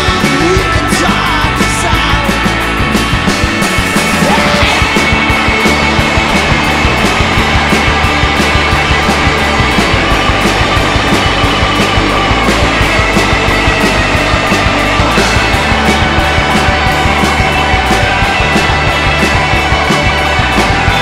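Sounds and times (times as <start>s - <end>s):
electric guitars strummed: 0.0s - 21.0s
steady drum beat: 0.0s - 21.0s.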